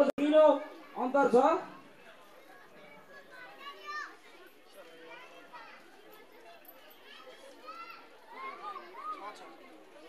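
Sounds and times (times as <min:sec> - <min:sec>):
faint chatter of voices: 0:00.0 - 0:10.0.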